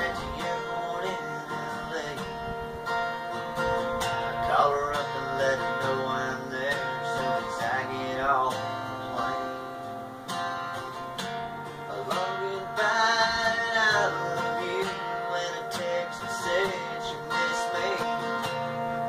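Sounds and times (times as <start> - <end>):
man singing: 0.0 - 2.5, 4.1 - 10.0, 11.5 - 18.8
strummed acoustic guitar: 0.0 - 19.0.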